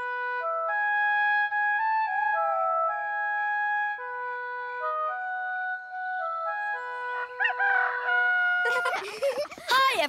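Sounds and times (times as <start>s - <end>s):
gentle flute music: 0.0s - 9.4s
rooster crowing: 7.0s - 9.1s.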